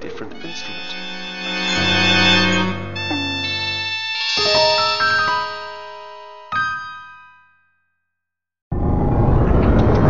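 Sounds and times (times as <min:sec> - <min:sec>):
synthesized instrument notes: 0:00.0 - 0:07.3.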